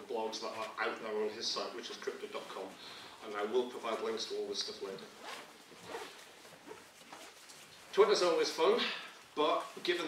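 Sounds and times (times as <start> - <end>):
faint rustling swishes: 0.0 - 10.0.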